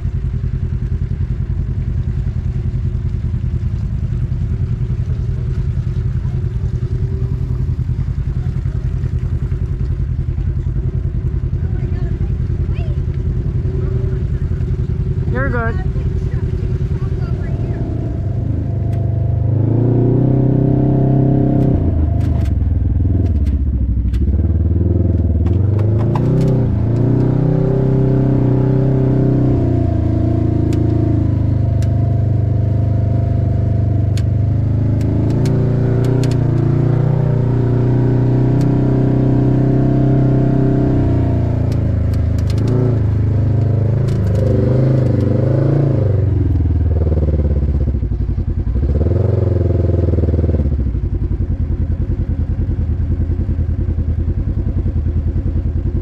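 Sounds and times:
utility vehicle engine running: 0.0s - 56.0s
vehicle rattling over ground: 3.6s - 37.8s.

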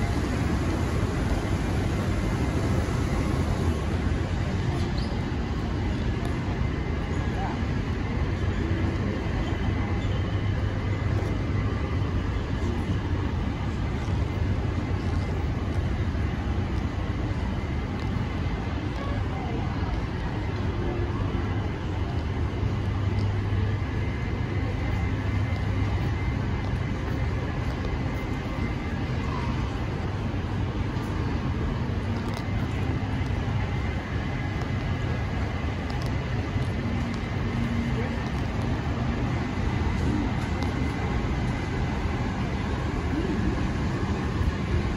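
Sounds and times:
city traffic drone: 0.0s - 44.9s.

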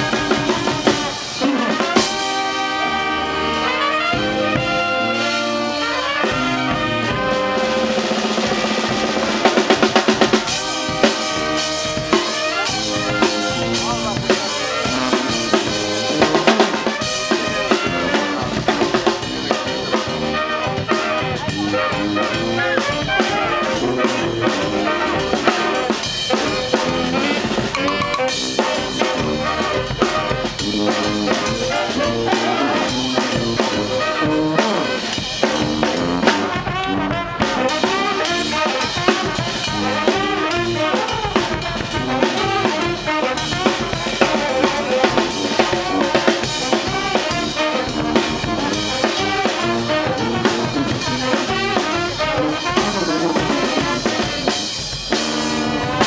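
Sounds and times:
saxophones: 0.0s - 56.0s
snare drum: 0.0s - 56.0s
trumpets: 0.0s - 56.0s
bass drum: 26.5s - 56.0s
sousaphone: 27.8s - 28.6s.

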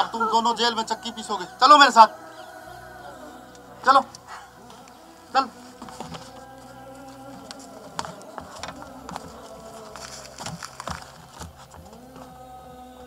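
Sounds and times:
clicks and scuffs of people moving: 5.6s - 12.4s.

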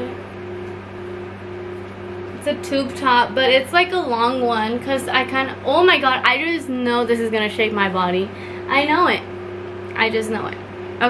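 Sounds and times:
electric fan humming: 0.0s - 11.0s
fan air noise: 0.0s - 11.0s.

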